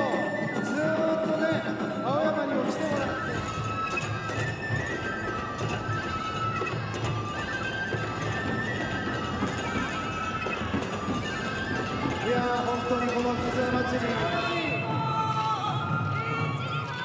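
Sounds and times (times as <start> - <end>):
drums beating: 0.0 - 17.0
flute melody with gliding notes: 0.0 - 17.0.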